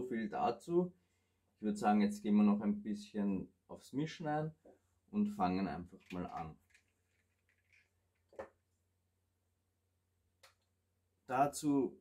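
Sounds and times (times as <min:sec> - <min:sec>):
handling small plastic bottles: 0:05.9 - 0:08.7.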